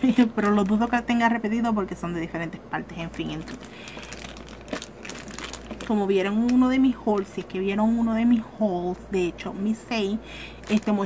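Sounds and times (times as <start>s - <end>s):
plastic bag crinkling: 0.0s - 1.0s, 3.0s - 7.8s, 10.4s - 11.0s.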